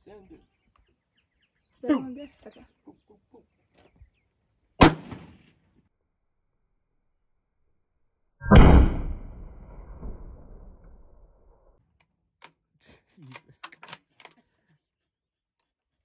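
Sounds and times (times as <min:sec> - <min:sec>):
rifle shot: 0:04.8 - 0:05.5, 0:08.4 - 0:11.2
short sharp crack: 0:08.4 - 0:11.3.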